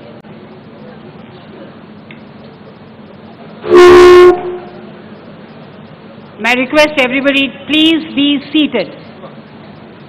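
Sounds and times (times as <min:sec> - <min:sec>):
low background hum: 0:00.0 - 0:10.0
horn-like blast: 0:03.6 - 0:05.0.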